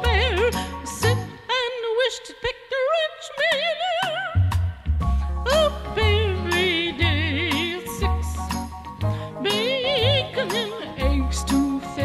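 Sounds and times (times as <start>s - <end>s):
woman singing with wide vibrato: 0.0s - 4.5s, 5.4s - 8.6s, 9.4s - 12.0s
small band with bass: 4.4s - 12.0s.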